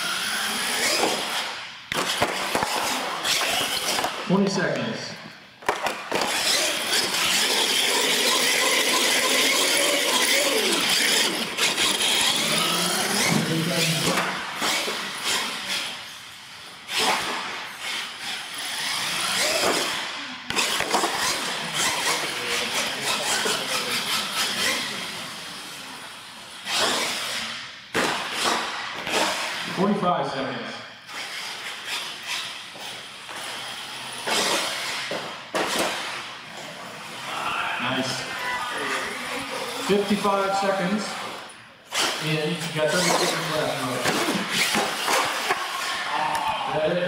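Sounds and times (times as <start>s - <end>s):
toy truck motors whining: 0.0s - 4.3s, 5.6s - 29.8s, 31.0s - 46.4s.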